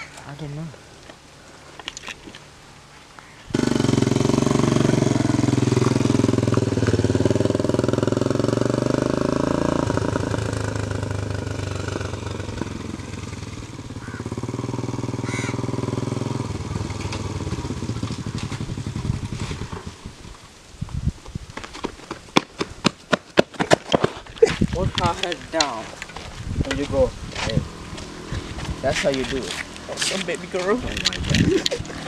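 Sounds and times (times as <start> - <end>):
motorcycle engine running: 3.5 - 20.4, 24.6 - 32.0.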